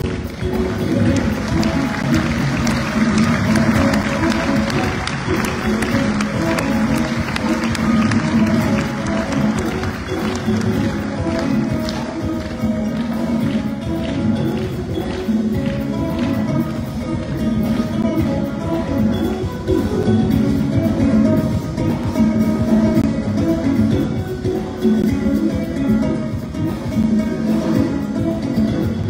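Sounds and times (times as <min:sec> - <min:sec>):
oud playing: 0:00.0 - 0:29.0.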